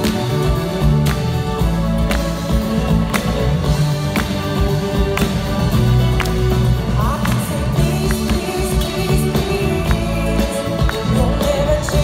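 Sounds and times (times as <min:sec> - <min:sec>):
bass guitar and keyboard notes: 0:00.0 - 0:12.0
drum kit beat: 0:00.0 - 0:12.0
woman singing: 0:06.8 - 0:12.0.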